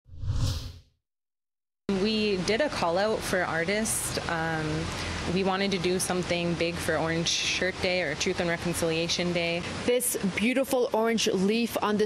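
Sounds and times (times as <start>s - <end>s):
whoosh sound effect: 0.0s - 0.8s.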